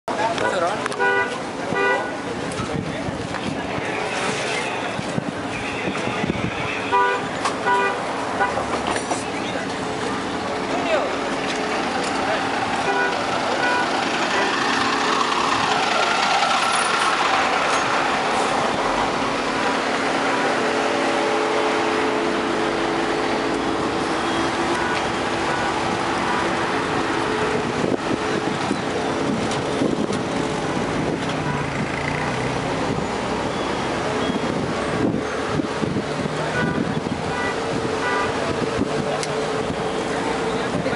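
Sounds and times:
crowd voices: 0.0 - 40.9
road traffic: 0.0 - 40.9.

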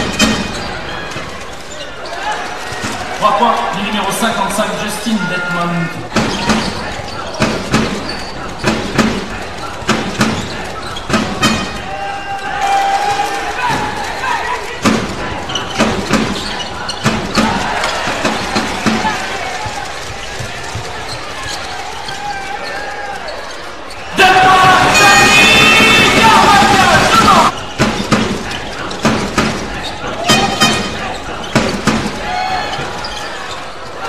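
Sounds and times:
voices and crowd noise: 0.0 - 34.0.

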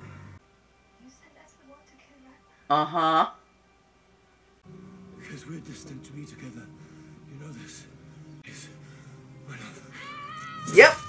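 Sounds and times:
background music: 0.0 - 11.0
woman yelling angrily: 10.5 - 11.0.

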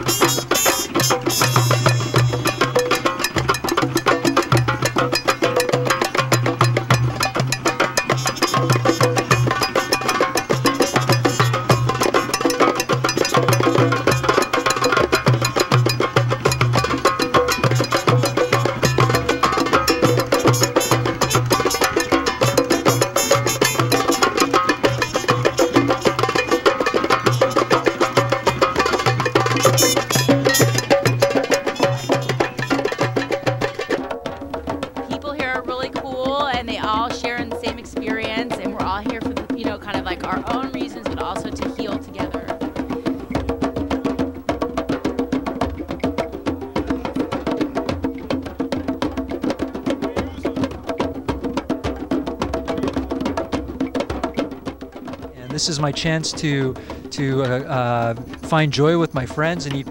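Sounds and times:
hand drums playing fast rhythm: 0.0 - 59.9.

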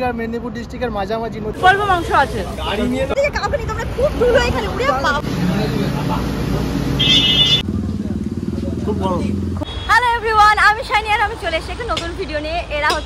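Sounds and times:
road noise: 0.0 - 13.0
woman speaking: 1.6 - 5.2
short high horn beep: 7.0 - 7.6.

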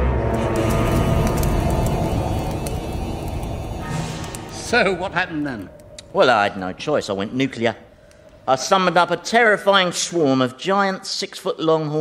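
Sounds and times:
eerie music: 0.0 - 10.6
low noisy rumble: 0.0 - 10.8.

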